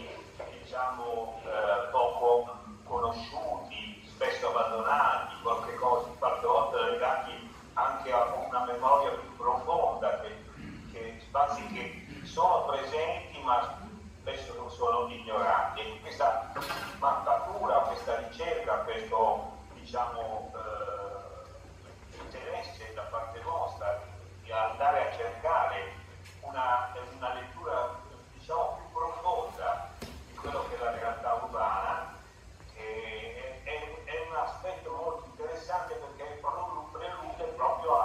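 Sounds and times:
man speaking over loudspeakers: 0.0 - 38.0.

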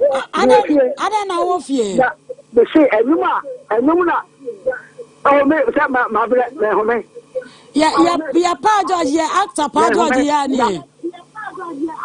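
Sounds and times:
low steady hum: 0.0 - 12.0
woman talking into microphone: 7.2 - 12.0.

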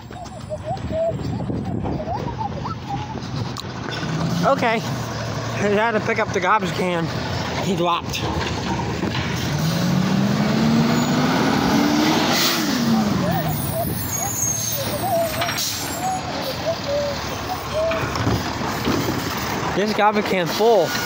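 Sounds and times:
garbage truck engine revving: 2.4 - 21.0.

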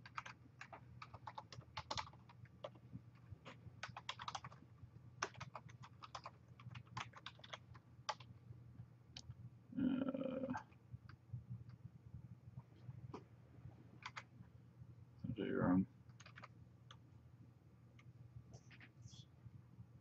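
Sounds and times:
faint keyboard typing: 0.0 - 8.4, 10.5 - 11.8, 14.0 - 14.3, 16.0 - 17.1.

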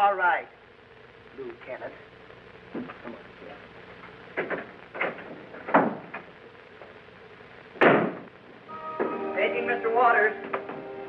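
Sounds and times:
door shutting thump: 4.4 - 6.3, 7.8 - 8.3
sharp knocks: 7.8 - 8.3.

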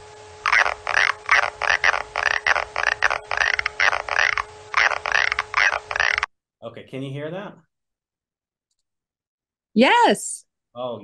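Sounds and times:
faint steady hum: 0.0 - 7.6
slowed moth clicks rasping bursts: 0.4 - 6.3.

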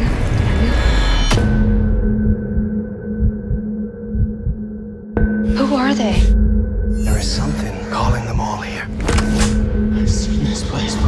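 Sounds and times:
low pulses: 0.0 - 11.0.

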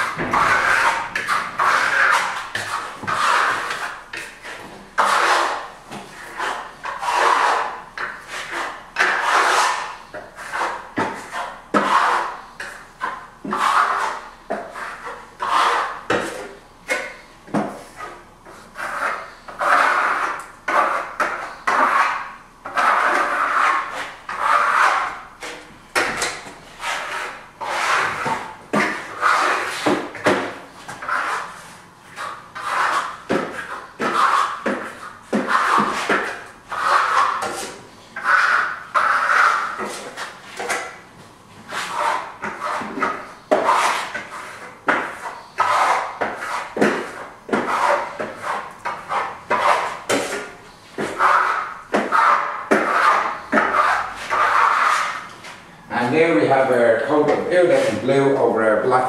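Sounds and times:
trowel scraping plaster on wall: 0.0 - 58.3.

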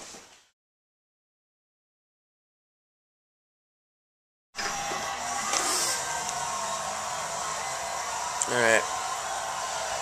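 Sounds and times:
electric blower whirring: 4.6 - 6.4
brief high hiss: 5.5 - 6.0.

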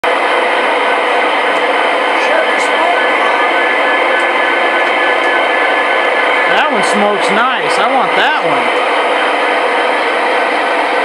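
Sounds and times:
model trains whirring on track: 0.0 - 11.0.

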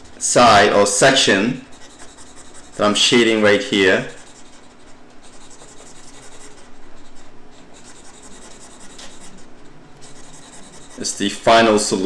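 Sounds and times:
stylus scratching on drawing tablet: 1.1 - 11.4.

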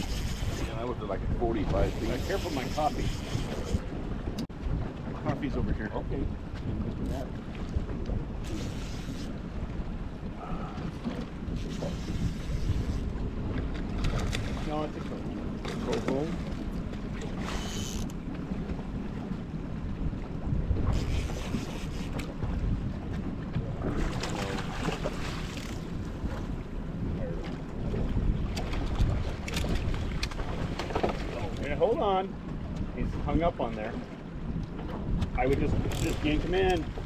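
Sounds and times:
wind noise on microphone: 0.0 - 33.6, 34.4 - 37.0
outboard motor running: 0.0 - 37.0.

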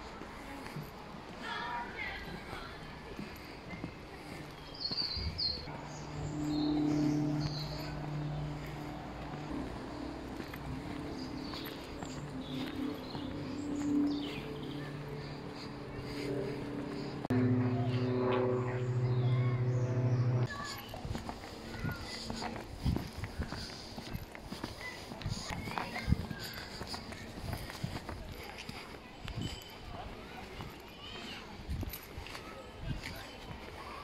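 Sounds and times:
birds chirping: 1.5 - 34.0
low held tones: 5.7 - 20.7.

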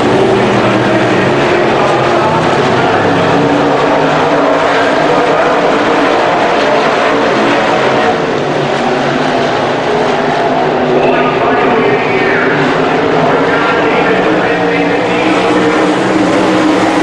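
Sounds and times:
race car engines droning: 0.0 - 17.0.

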